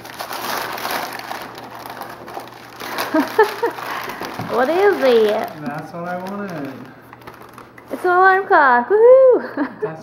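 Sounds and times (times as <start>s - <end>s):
wrapping paper rustling and tearing: 0.0s - 8.6s.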